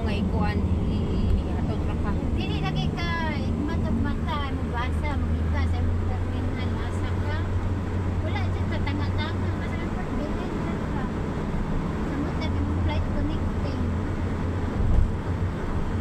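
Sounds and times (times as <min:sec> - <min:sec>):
car cabin road rumble: 0:00.0 - 0:16.0.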